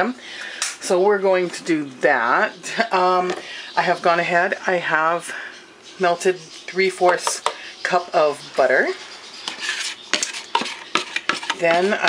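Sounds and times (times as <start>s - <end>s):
wooden spoon scraping bowl: 7.0s - 12.0s.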